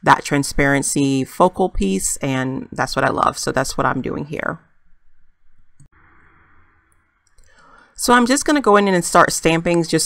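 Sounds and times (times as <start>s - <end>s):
intake of breath: 7.4s - 8.0s.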